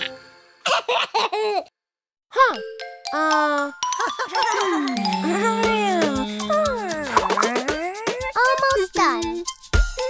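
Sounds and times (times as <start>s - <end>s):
cartoon baby giggling: 0.7s - 1.7s
children's song: 4.4s - 9.4s
pitched steady tones: 4.8s - 8.2s
voiced exclamation: 4.9s - 7.8s.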